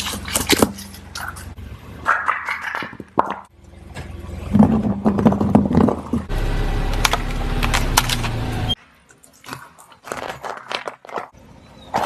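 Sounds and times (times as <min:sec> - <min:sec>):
tyre crunching plastic ice pops: 0:09.4 - 0:12.0.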